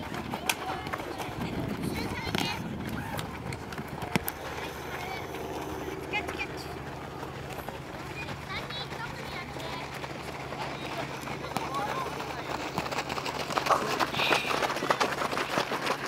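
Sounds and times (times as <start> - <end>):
children shouting: 0.0 - 5.3.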